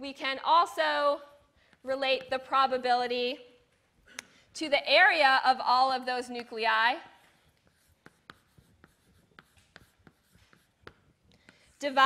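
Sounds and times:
chalk tapping on blackboard: 7.3s - 12.0s.

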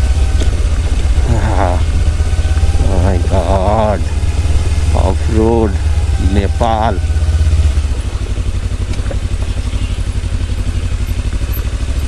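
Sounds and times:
motorcycle engine low rumble: 0.0s - 12.0s
wavering voice: 1.2s - 2.0s, 2.6s - 4.2s, 4.9s - 7.2s.

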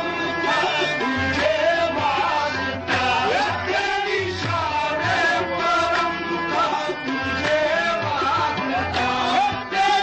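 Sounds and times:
ornamented vocal melody: 0.0s - 10.0s.

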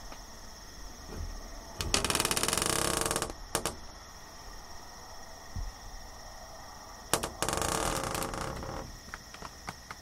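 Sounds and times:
evening insects chorus: 0.0s - 10.0s.

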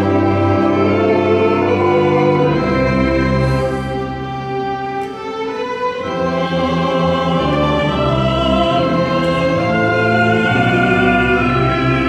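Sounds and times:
choir singing held chords: 0.0s - 12.0s
orchestral strings: 0.0s - 12.0s.

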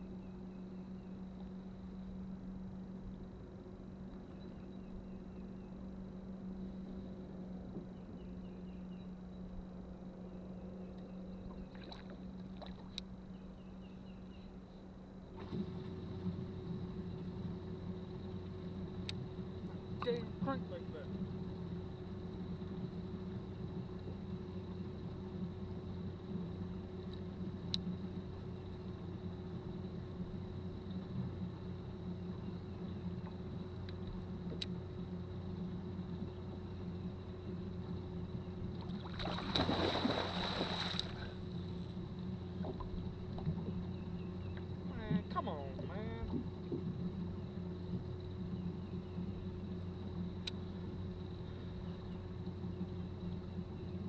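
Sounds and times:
electric trolling motor humming: 0.0s - 54.0s
fish thrashing and splashing: 39.0s - 41.2s.

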